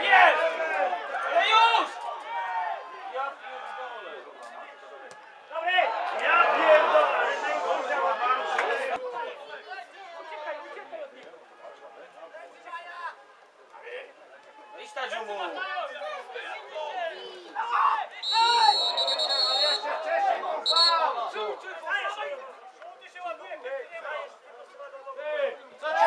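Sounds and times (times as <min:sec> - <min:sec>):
spectators talking and calling out: 0:00.0 - 0:26.0
referee's whistle blowing: 0:18.2 - 0:21.3.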